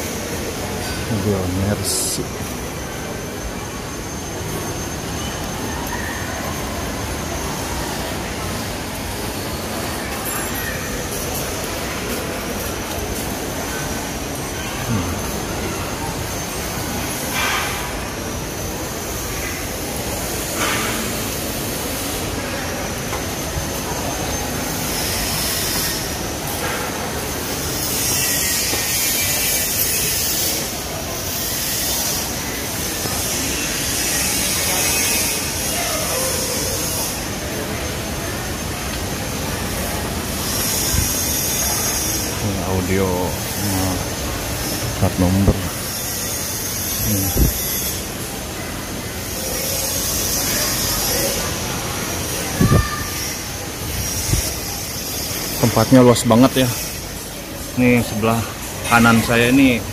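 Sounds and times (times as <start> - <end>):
faint high whine: 0.0 - 59.9
indoor rushing background noise: 0.0 - 59.9
man's low voice: 47.0 - 47.6.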